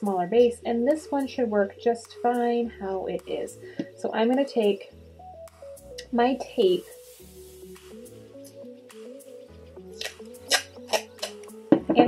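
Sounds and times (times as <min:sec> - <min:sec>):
background music with held notes: 0:00.0 - 0:12.0
masking tape ripping off roll: 0:10.0 - 0:11.5.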